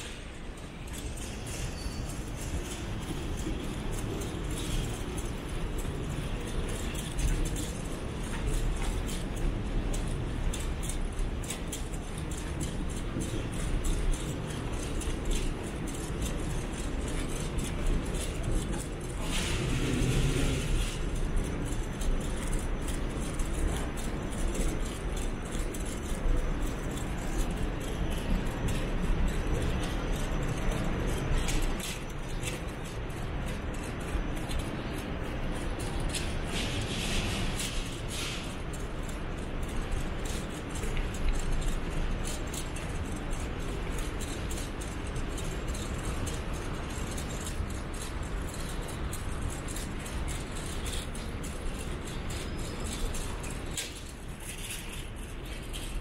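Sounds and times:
light clicks and rattles: 0.0 - 56.0.

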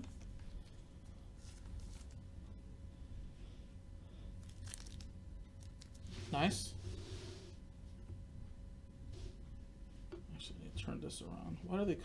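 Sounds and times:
trading cards rustling: 1.4 - 2.2, 4.4 - 6.1.

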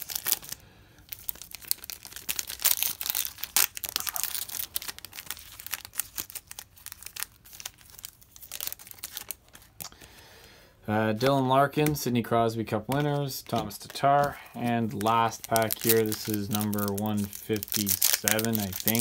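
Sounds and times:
foil wrapper crackling and tearing: 0.0 - 10.0, 13.1 - 19.0.

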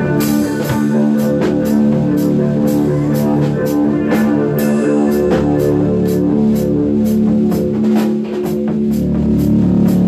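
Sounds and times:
rock band playing: 0.0 - 10.0.

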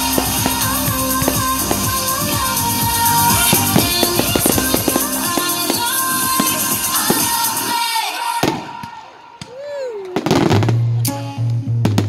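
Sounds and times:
music with bass line: 0.0 - 7.7, 10.4 - 12.0
firework crackling: 0.0 - 9.3
firework bangs: 0.0 - 10.8.

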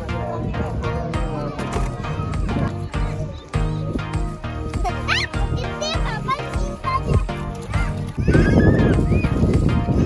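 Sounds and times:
background music: 0.0 - 10.0
beach ambience: 0.0 - 10.0
wind rumbling on microphone: 8.0 - 10.0.

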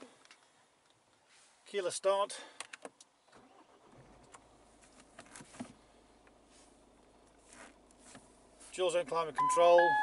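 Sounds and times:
car engine cranking: 3.3 - 6.4
car engine idling hum: 3.4 - 10.0.

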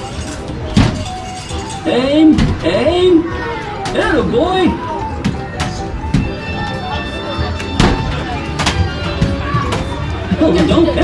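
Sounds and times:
arcade music: 0.0 - 11.0.

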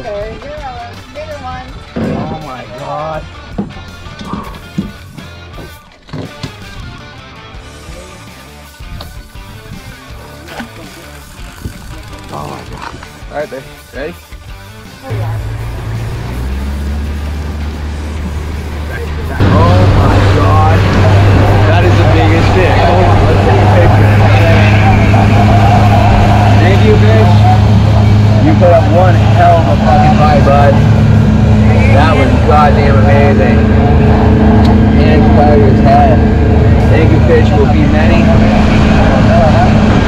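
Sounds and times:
outboard motor running: 9.0 - 14.1, 14.8 - 40.0.

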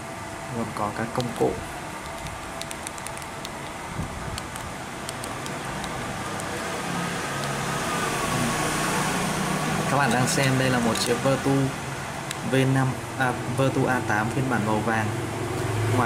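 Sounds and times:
low steady engine hum: 0.0 - 16.0.

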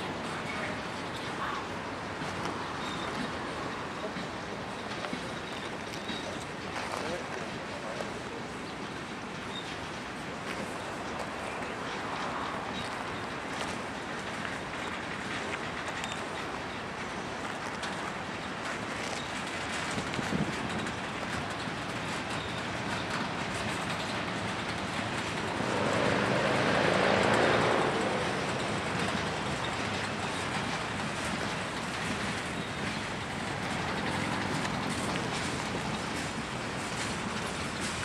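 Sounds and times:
freight train wheels rumbling: 0.0 - 38.0.

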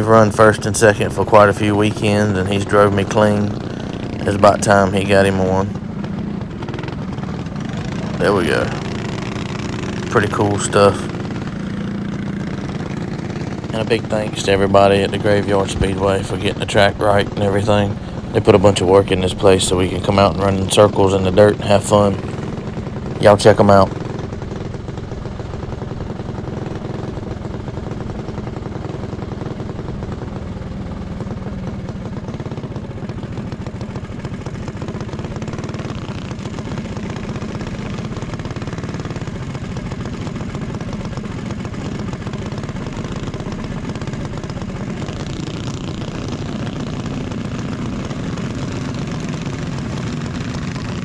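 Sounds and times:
kart engine running: 0.0 - 51.0.

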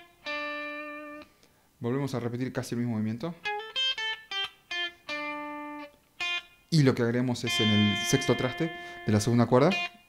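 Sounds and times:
clean electric guitar notes: 7.3 - 10.0.

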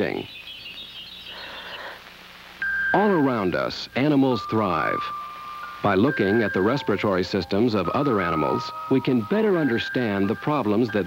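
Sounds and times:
low steady hum: 0.0 - 11.0
soundtrack hiss: 0.0 - 11.0.

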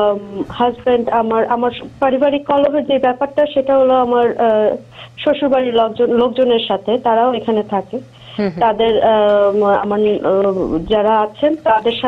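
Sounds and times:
woman speaking over telephone: 0.0 - 8.0, 8.6 - 12.0.

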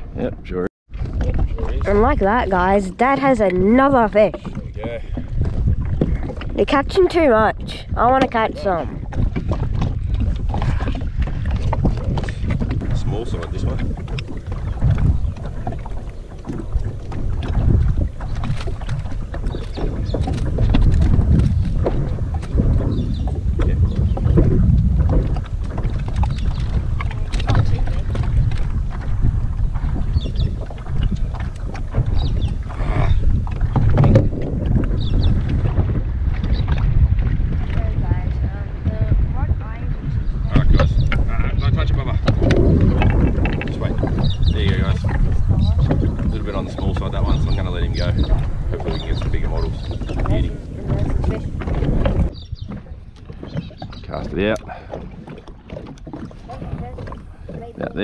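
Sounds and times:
water lapping against kayak hull: 0.0 - 58.0
wind rumbling on microphone: 0.0 - 58.0
knocks and clicks: 9.1 - 29.1, 33.4 - 35.6, 42.2 - 47.4.

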